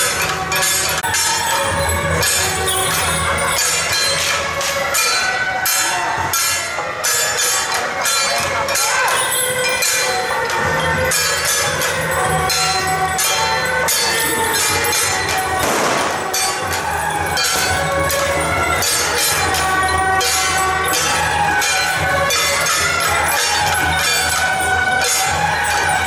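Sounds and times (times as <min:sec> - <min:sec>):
cymbal and gong strikes: 0:14.3 - 0:20.6.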